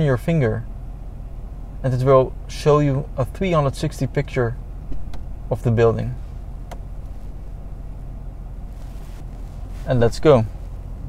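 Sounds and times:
low steady cabin hum: 0:00.0 - 0:11.0.

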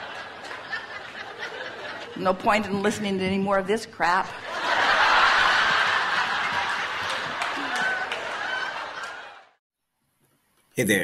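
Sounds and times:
audience laughing: 0:00.0 - 0:03.2, 0:04.3 - 0:09.6.

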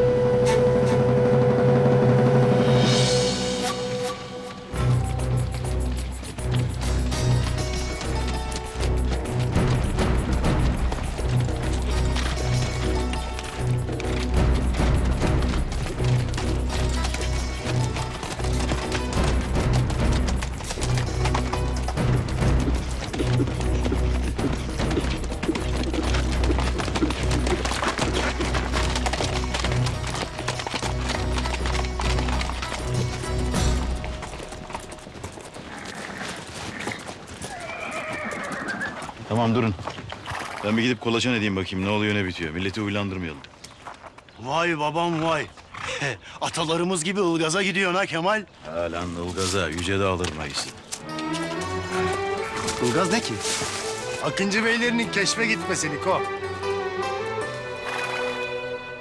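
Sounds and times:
dramatic music with low drum beat: 0:00.0 - 0:35.2
hooves clip-clopping on dirt: 0:04.7 - 0:58.5
horse whinnying: 0:35.6 - 0:39.3, 0:57.7 - 0:58.6.

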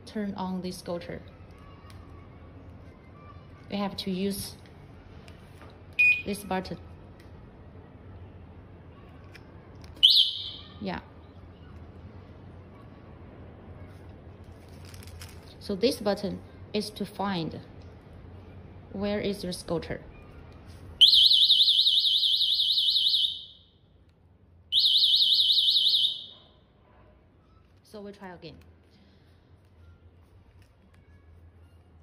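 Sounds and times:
warbling alarm siren: 0:21.0 - 0:23.6, 0:24.7 - 0:26.3.

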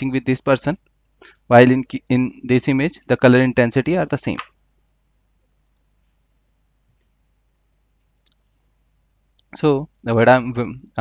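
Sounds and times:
computer mouse clicks: 0:05.6 - 0:05.9, 0:08.0 - 0:08.5.

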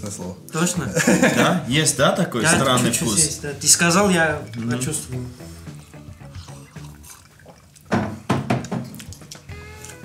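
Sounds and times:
quiet background music: 0:00.0 - 0:10.0
noisy liquid sound: 0:02.5 - 0:09.5.

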